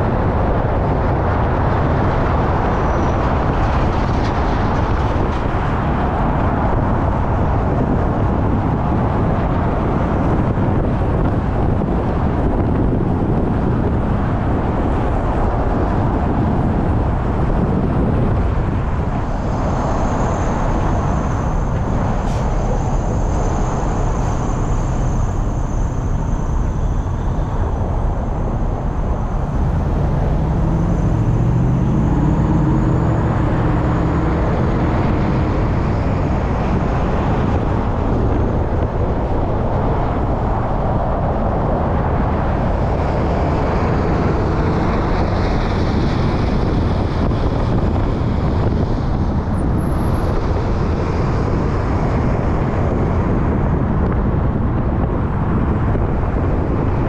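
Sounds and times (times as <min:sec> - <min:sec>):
low rumble: 0:00.0 - 0:57.0
passing traffic: 0:00.0 - 0:57.0
road and tyre noise: 0:00.0 - 0:57.0.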